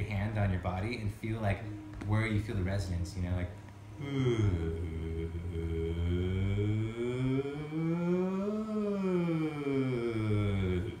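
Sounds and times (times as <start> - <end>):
man toning a sustained vowel: 3.9 - 11.0.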